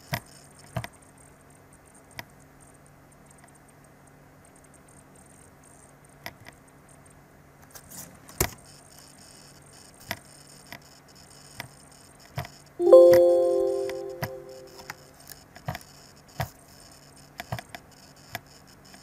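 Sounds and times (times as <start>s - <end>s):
computer alert chime: 12.8s - 14.8s.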